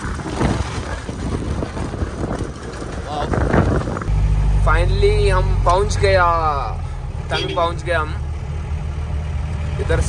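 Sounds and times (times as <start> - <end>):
wind buffeting microphone: 0.0 - 6.3
diesel engine running: 4.0 - 10.0.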